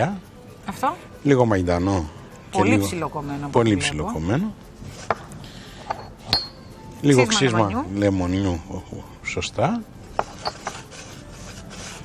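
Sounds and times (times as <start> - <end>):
pan scraping on hob: 10.2 - 12.0.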